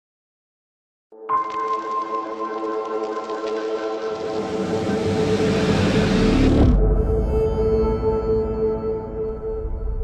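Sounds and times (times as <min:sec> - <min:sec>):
low rumble: 0:04.4 - 0:10.0.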